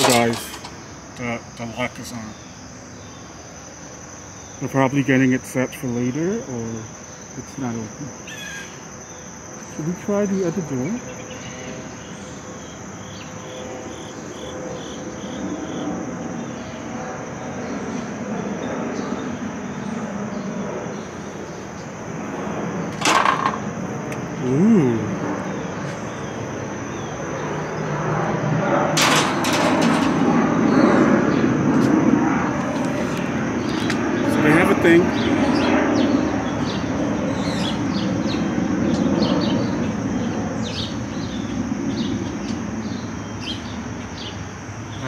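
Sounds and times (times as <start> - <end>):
door creaking: 0.0 - 0.9, 22.9 - 23.7, 29.0 - 30.8
high insect drone: 0.0 - 45.0
clatter of knocks: 23.0 - 23.7, 29.0 - 30.4.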